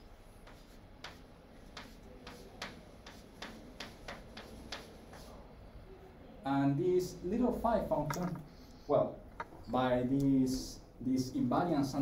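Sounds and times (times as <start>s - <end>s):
chalk tapping on blackboard: 0.4s - 5.4s.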